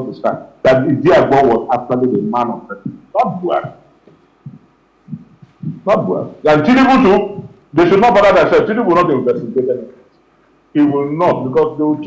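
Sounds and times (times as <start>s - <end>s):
man talking: 0.0s - 3.8s, 5.6s - 10.0s, 10.8s - 12.0s.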